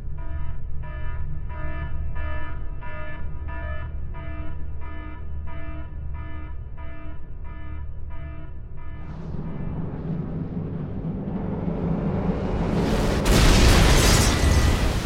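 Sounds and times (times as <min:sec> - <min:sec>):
low steady rumble: 0:09.0 - 0:15.0
rising roar: 0:09.0 - 0:15.0.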